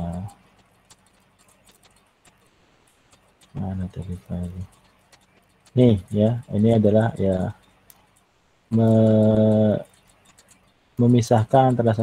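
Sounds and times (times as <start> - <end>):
faint clicks: 0.0 - 12.0.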